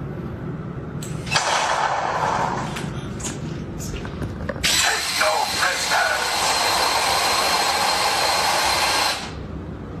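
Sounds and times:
toy tank whirring with high whine: 4.6s - 9.4s.

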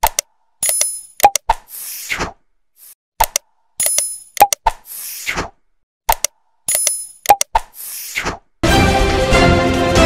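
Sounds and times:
quick clicks: 0.0s - 1.7s, 3.2s - 4.9s, 6.1s - 7.8s
theme music: 8.6s - 10.0s.

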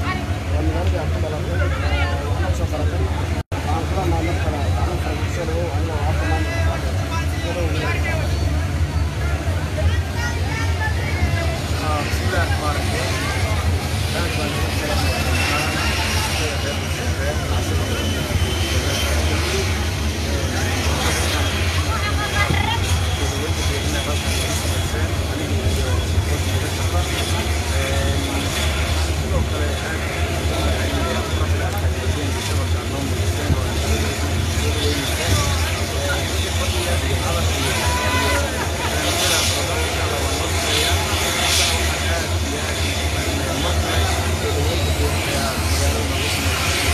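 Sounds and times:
men speaking into microphone: 0.0s - 9.8s, 11.1s - 46.9s
low engine drone: 0.0s - 46.9s
faint high whine: 12.0s - 22.1s.

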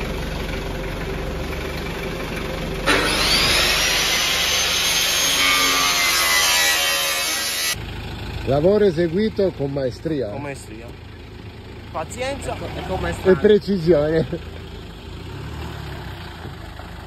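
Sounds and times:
engine idling: 0.0s - 5.2s, 7.7s - 15.4s, 16.2s - 17.0s
angle grinder cutting metal: 2.8s - 7.8s.

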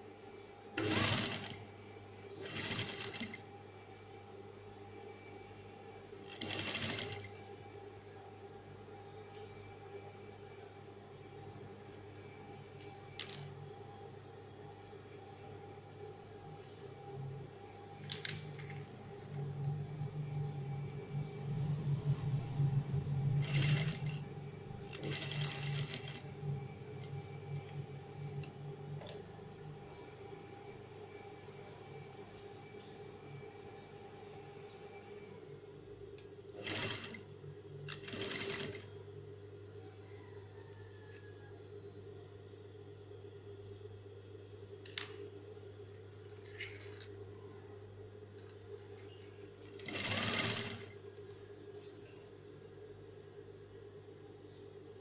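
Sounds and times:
sewing machine stitching: 0.8s - 1.6s, 2.4s - 3.4s, 6.3s - 7.3s, 23.4s - 24.2s, 24.9s - 26.3s, 36.6s - 37.2s, 37.9s - 38.9s, 49.8s - 50.9s.

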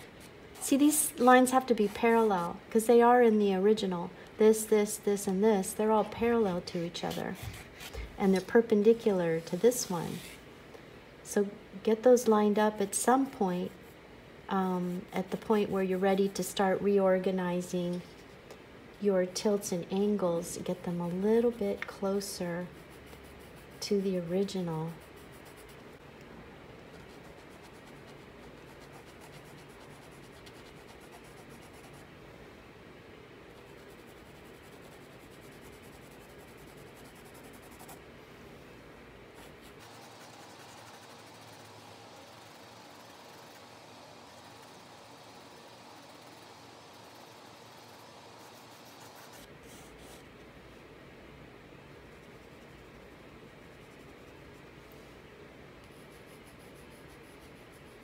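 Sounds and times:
pencil scratching on paper: 22.6s - 25.9s, 26.9s - 32.0s, 33.6s - 38.0s, 39.4s - 43.6s, 46.0s - 50.2s.

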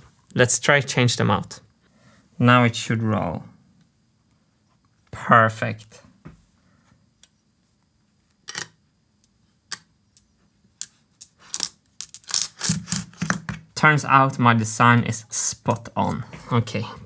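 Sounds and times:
person speaking: 0.3s - 1.7s, 5.1s - 6.2s, 13.8s - 17.0s
steel marbles clicking: 11.2s - 13.0s.

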